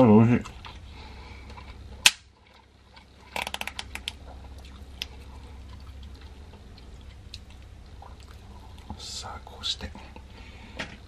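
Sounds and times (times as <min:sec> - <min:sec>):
crackling plastic clicks: 0:01.5 - 0:04.2.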